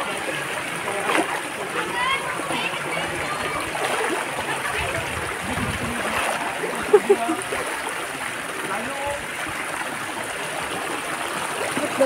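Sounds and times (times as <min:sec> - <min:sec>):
water rushing: 0:00.0 - 0:12.0
water splash: 0:00.9 - 0:01.7, 0:03.2 - 0:08.2.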